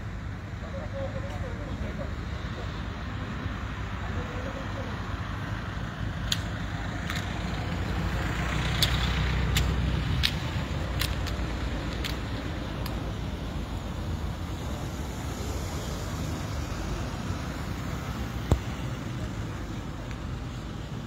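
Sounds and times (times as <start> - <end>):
rumble of passing vehicles: 0.0 - 21.0
sharp clicks: 6.2 - 7.4, 8.7 - 13.0.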